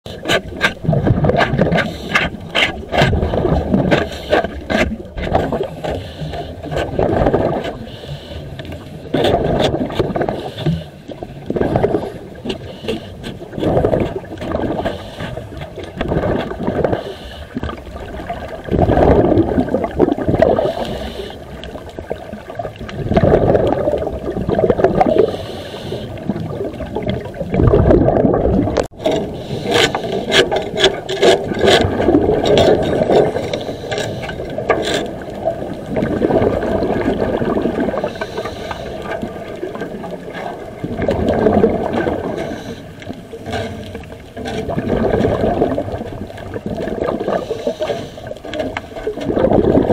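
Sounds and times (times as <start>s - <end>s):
scraping barnacles off hull: 0.0s - 49.9s.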